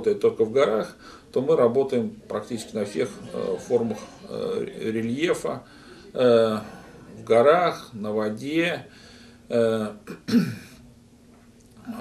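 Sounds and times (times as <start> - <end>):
man clearing his throat: 10.0 - 10.8.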